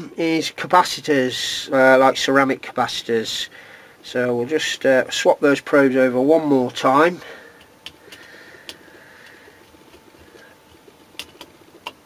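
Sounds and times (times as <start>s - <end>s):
clips clicking and tapping: 10.7s - 12.0s.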